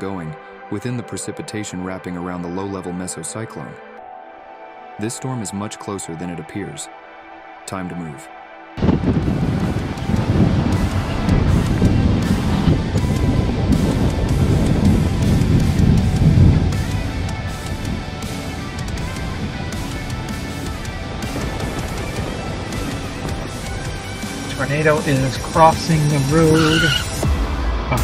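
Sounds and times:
background music: 0:00.0 - 0:28.0
wind rumble on microphone: 0:08.8 - 0:26.4.

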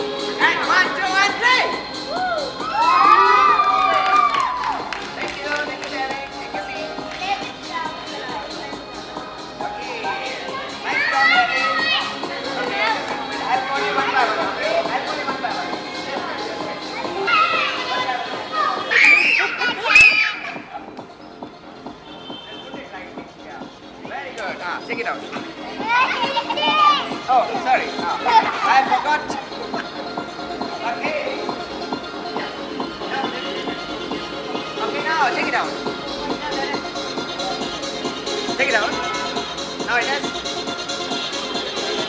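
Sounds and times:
children shouting and cheering: 0:01.3 - 0:05.2, 0:10.4 - 0:14.5, 0:16.8 - 0:20.9, 0:25.7 - 0:27.3
children calling out: 0:17.1 - 0:20.7.

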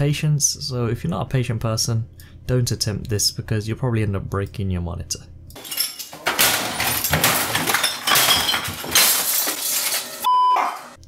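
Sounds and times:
clinking debris: 0:05.6 - 0:10.3
glass shattering: 0:05.6 - 0:11.0
short steady beep: 0:10.3 - 0:10.6.

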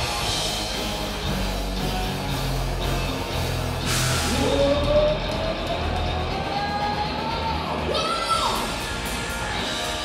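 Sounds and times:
live rock band playing: 0:00.0 - 0:10.0
cymbal crash: 0:03.8 - 0:04.5.

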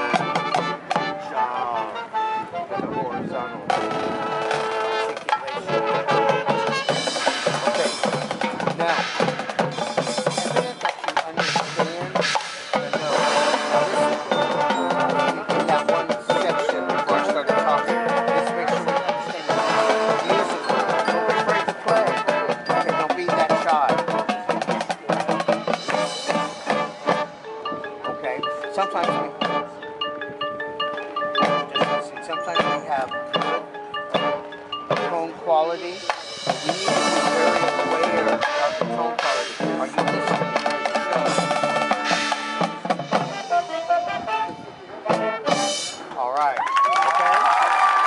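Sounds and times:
drum and percussion hits: 0:00.0 - 0:01.2, 0:03.7 - 0:43.8, 0:45.1 - 0:46.6
sustained brass chords: 0:00.0 - 0:10.6, 0:11.3 - 0:30.2, 0:31.1 - 0:46.3
marching band playing: 0:00.0 - 0:48.0.

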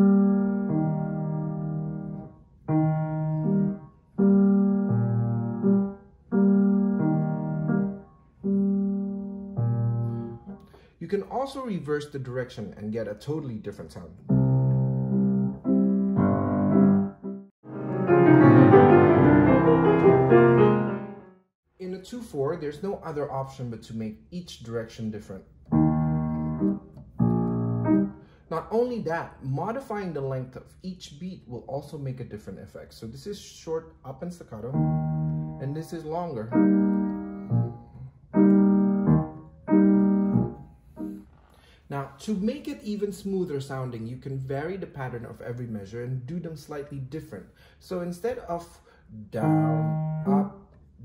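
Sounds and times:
grand piano chords: 0:00.0 - 0:10.6, 0:14.1 - 0:21.5, 0:25.6 - 0:28.3, 0:34.6 - 0:41.3, 0:49.4 - 0:50.7.

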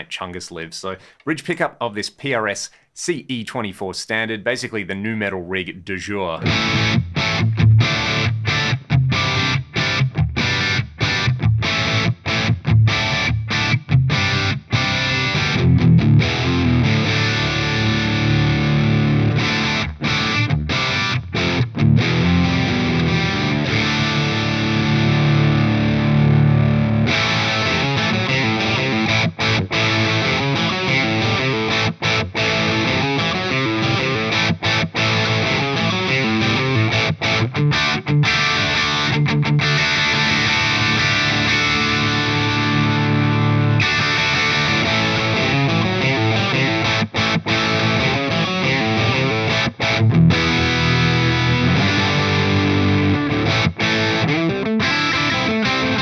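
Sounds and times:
distorted electric guitar riff: 0:06.4 - 0:56.0.

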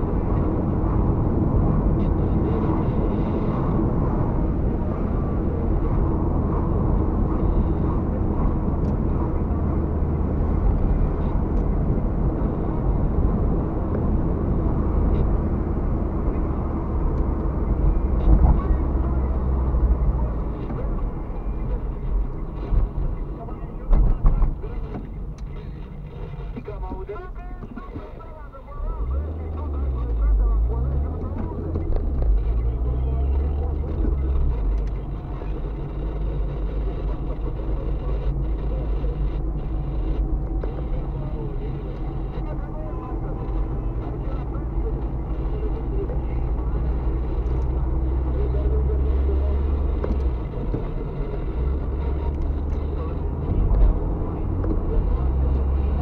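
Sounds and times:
car engine accelerating: 0:00.0 - 0:56.0
road noise inside car: 0:00.0 - 0:56.0.

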